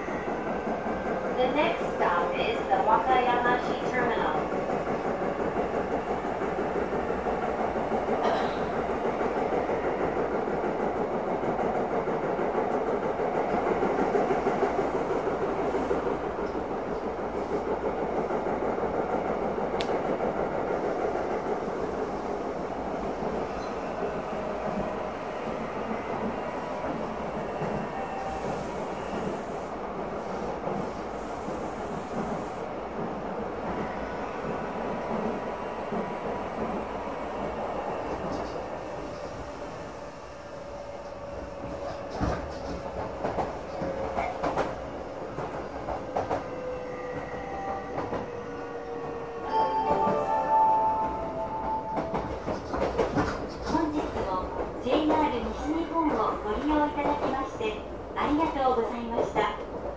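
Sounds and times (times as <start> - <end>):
train wheels rumbling on rails: 0.0 - 59.9
faint clicks: 19.8 - 20.0.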